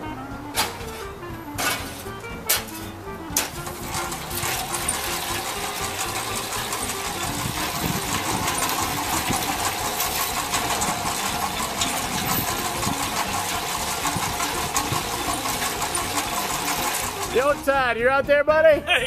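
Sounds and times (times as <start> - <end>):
belt conveyor running: 0.0 - 18.0.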